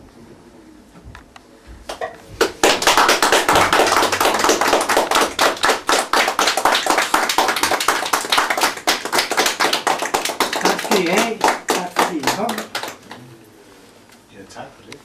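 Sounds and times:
audience applause: 2.4s - 13.2s.

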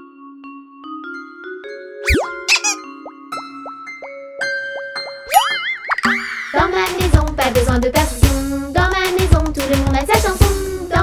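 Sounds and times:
rising swoops: 2.0s - 2.8s
wobbling upward glide: 2.1s - 2.8s
children's music jingle: 2.1s - 5.5s.

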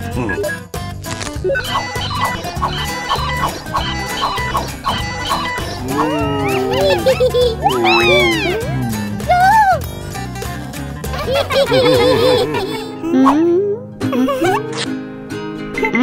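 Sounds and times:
cartoon music with steady beat: 0.0s - 16.0s
cartoon voices squealing: 1.5s - 9.8s.

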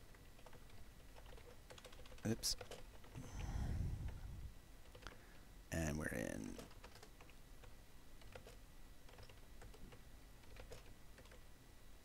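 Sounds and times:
computer keyboard keystrokes: 0.4s - 3.2s, 6.6s - 11.4s.

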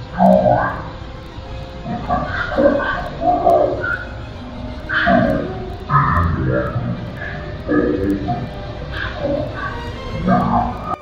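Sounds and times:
indistinct voice: 0.0s - 1.2s, 1.8s - 11.0s.

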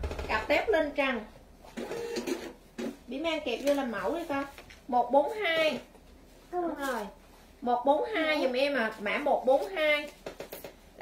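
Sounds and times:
woman talking: 0.2s - 1.3s, 3.1s - 5.9s, 6.5s - 10.2s.

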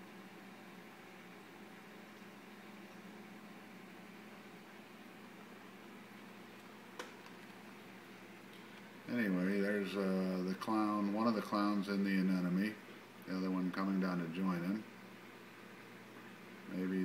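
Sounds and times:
aquarium pumps humming: 0.0s - 17.0s.

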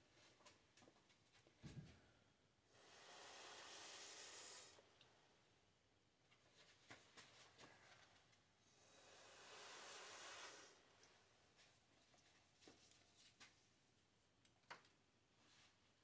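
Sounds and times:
breath blown through straw: 2.7s - 4.9s, 8.6s - 10.9s
faint clicks and taps: 11.0s - 15.0s.

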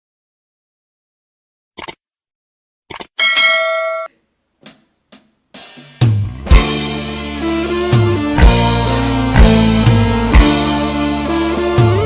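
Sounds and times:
bell ding: 3.2s - 4.1s.

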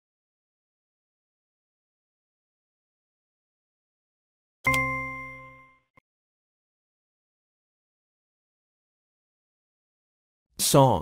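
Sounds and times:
electronic ding: 4.7s - 6.0s.

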